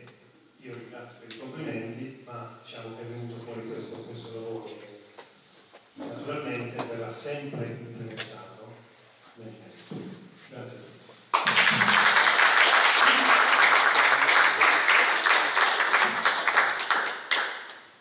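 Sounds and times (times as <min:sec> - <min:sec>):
audience applauding: 0:11.3 - 0:18.0.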